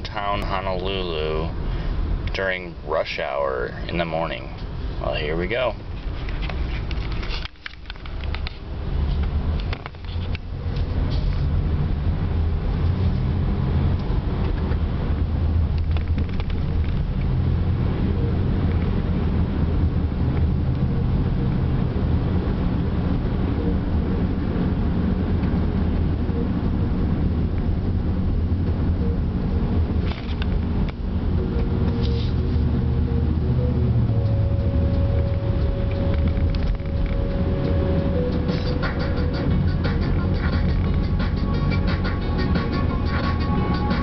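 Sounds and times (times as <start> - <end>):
car cabin rumble: 0.0 - 44.0.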